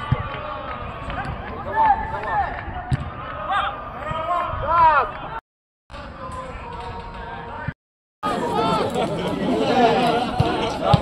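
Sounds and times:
overlapping chatter of spectators: 0.0 - 5.4, 6.0 - 11.0.

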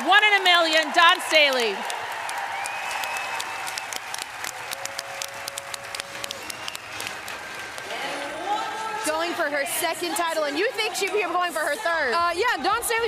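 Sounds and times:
crowd applauding: 0.0 - 9.0.

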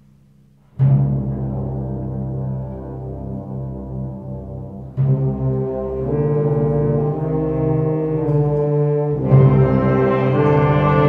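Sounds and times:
concert band playing brass chords: 1.4 - 11.0.

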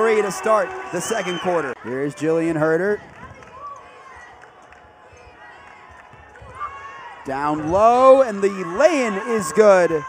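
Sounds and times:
low crowd murmur: 1.0 - 9.8.

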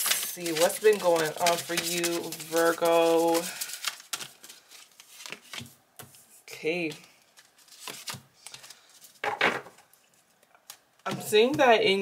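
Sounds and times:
cards being shuffled: 0.0 - 9.4.

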